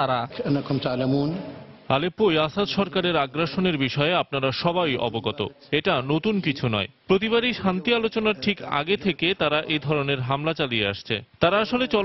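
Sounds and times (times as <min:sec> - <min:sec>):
man speaking in a low voice: 0:00.0 - 0:12.0.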